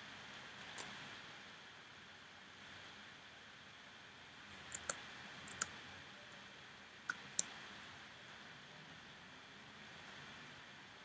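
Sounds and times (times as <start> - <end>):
faint room hiss: 0.0 - 11.0
keyboard and mouse clicks: 4.6 - 5.8, 7.1 - 7.6.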